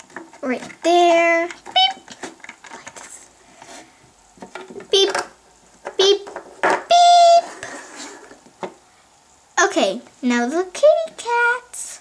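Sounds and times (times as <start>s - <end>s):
plastic toys clattering: 0.0s - 3.2s, 4.4s - 8.0s.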